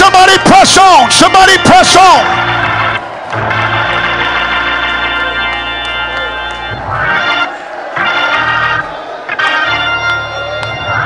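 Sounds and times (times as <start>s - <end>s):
organ playing sustained chord: 0.1s - 11.0s.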